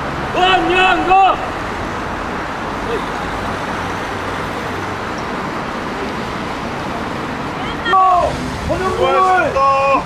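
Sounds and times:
road traffic from passing cars: 0.0 - 10.0
loud shouted call: 0.3 - 1.7, 7.5 - 10.0.

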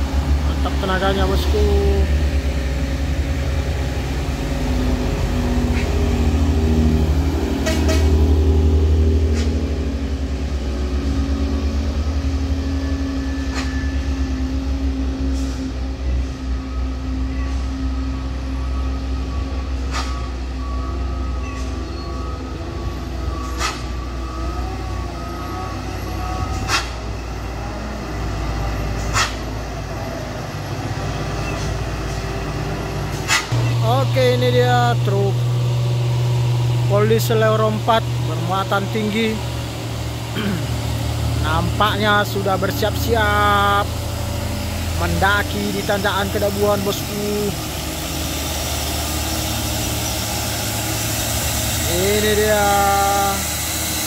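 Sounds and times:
truck diesel engine droning: 0.0 - 54.0.

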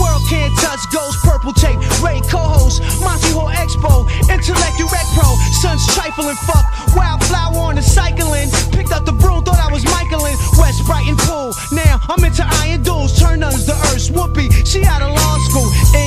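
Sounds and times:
rapping over a beat: 0.0 - 16.0.

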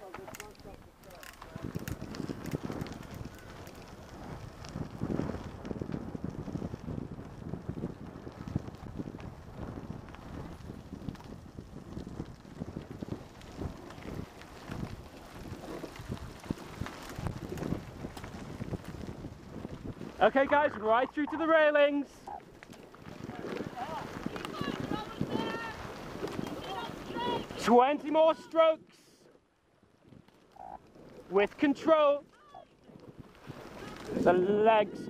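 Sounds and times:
bicycle knocks and rattles: 0.0 - 20.2
wind buffeting microphone: 0.0 - 28.1, 29.9 - 35.0.

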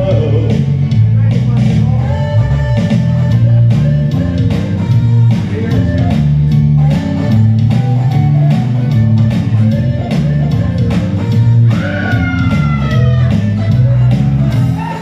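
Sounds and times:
electric bass guitar: 0.0 - 15.0
steady beat: 0.0 - 15.0.

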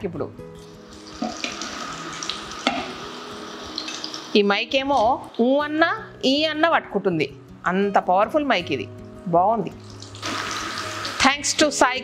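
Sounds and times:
fritters sizzling in hot oil: 0.6 - 4.4, 9.8 - 11.6.

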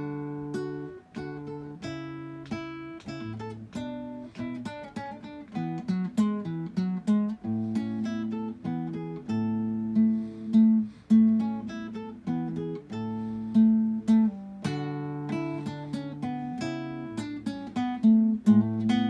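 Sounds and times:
acoustic guitar piece: 0.0 - 19.0.

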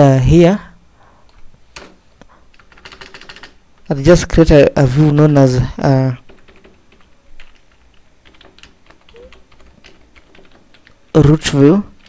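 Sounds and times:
computer keyboard typing: 2.5 - 3.9, 6.2 - 12.0.

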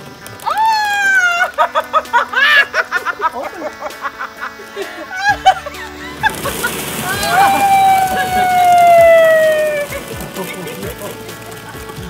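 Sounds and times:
woman screaming: 0.4 - 2.8, 5.1 - 5.6, 7.0 - 10.0
plastic balls clattering on concrete: 6.1 - 12.0.

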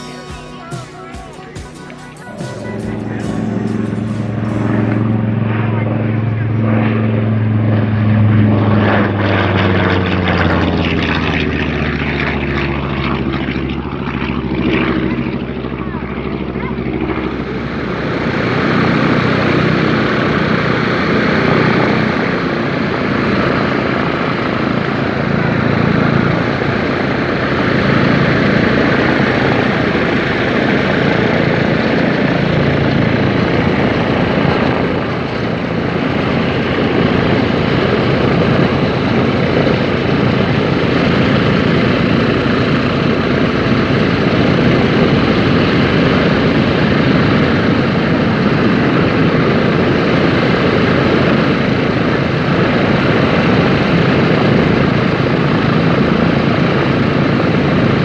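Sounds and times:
radial aircraft engines droning: 0.0 - 58.0.

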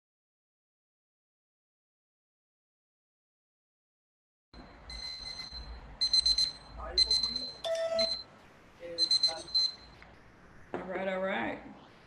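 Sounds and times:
high-pitched alarm beeps: 4.6 - 8.3, 8.9 - 10.0.

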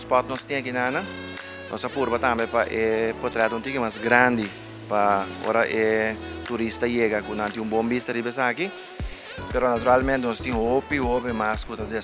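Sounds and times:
person talking: 0.0 - 8.8, 9.4 - 12.0.

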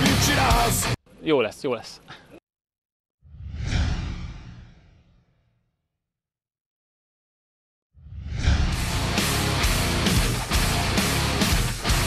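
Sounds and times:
deep rumbling whoosh: 3.3 - 5.5, 8.0 - 9.2.

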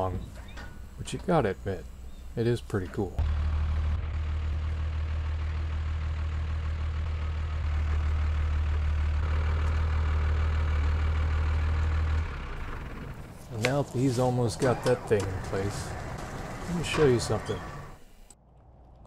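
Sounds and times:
truck engine idling: 0.0 - 18.4.

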